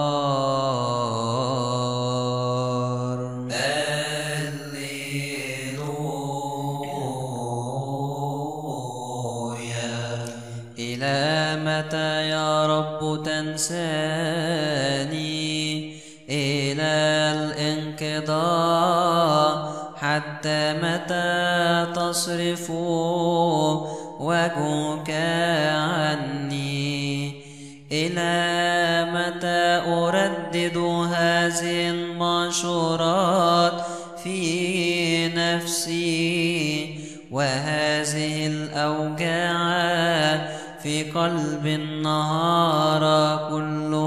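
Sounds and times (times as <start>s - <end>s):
man chanting wordless melisma: 0.0s - 44.0s.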